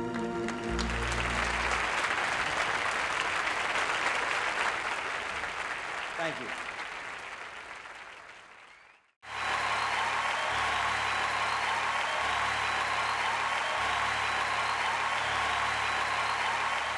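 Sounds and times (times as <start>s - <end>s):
crowd applause: 0.0s - 16.9s.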